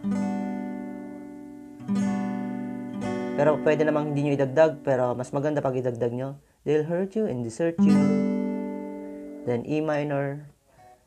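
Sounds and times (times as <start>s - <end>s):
acoustic guitar chord ringing: 0.0s - 5.8s, 7.7s - 10.5s.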